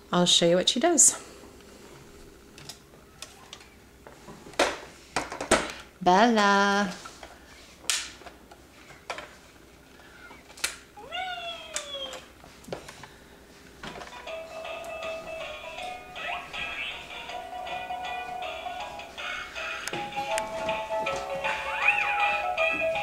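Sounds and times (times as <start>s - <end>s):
child crying: 11.0s - 12.3s.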